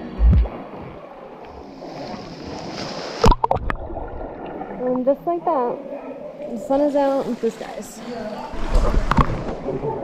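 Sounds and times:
heavy low thump: 0.0 - 0.6
water sloshing and splashing: 0.0 - 10.0
sharp splashes or knocks: 2.1 - 4.7.

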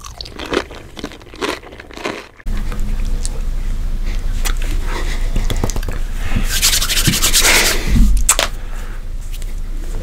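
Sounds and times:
hands rubbing together: 6.4 - 7.8.

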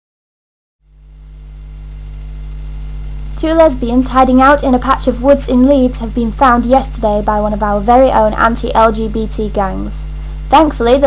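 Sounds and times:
low steady hum: 0.9 - 11.0.

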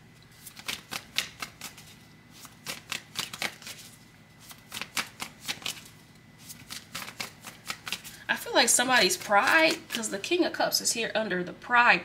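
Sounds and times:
cards being shuffled: 0.3 - 10.2.

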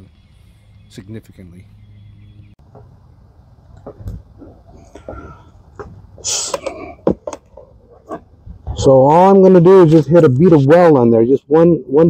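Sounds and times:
handling clicks and knocks: 3.7 - 8.3.

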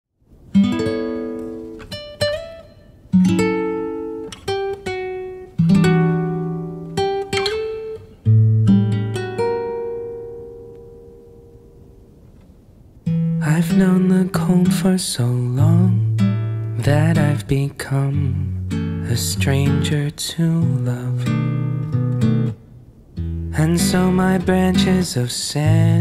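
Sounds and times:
acoustic guitar chords: 0.3 - 26.0
plucked guitar notes: 0.5 - 12.0, 18.1 - 20.0, 23.2 - 26.0.

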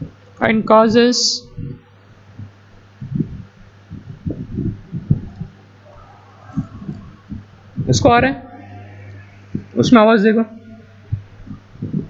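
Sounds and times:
low electrical hum: 0.0 - 12.0
muffled low thumps: 1.5 - 8.6, 9.3 - 10.0, 10.6 - 12.0.

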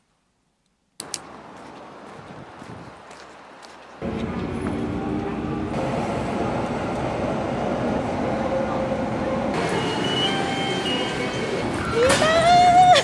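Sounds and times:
train rumbling from inside carriage: 4.0 - 13.0.

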